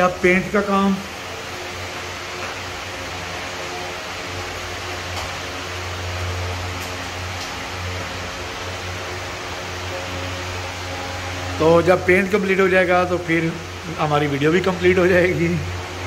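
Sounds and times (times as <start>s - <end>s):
electric fan humming: 0.0s - 16.0s.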